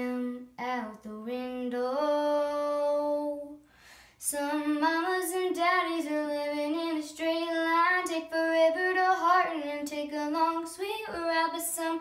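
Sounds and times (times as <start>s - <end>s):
girl singing unaccompanied: 0.0s - 3.6s, 4.2s - 12.0s.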